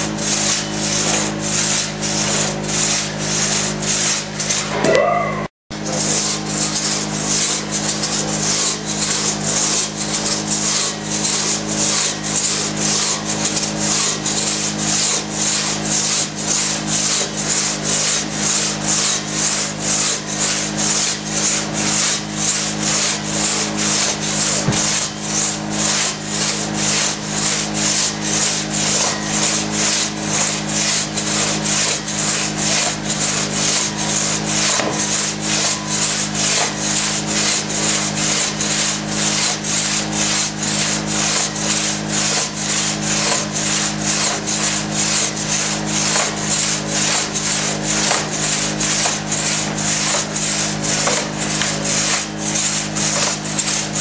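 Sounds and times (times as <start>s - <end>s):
crosscut saw rasping through log: 0.0s - 4.9s, 5.7s - 54.0s.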